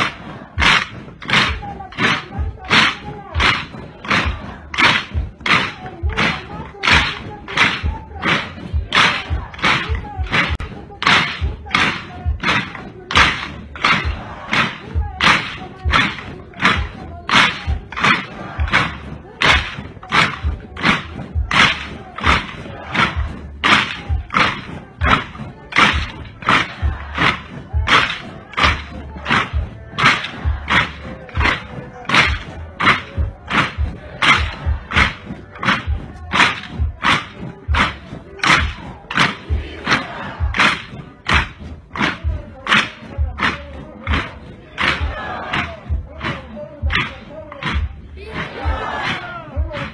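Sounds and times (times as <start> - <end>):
marching footfalls in step: 0.0 - 49.9.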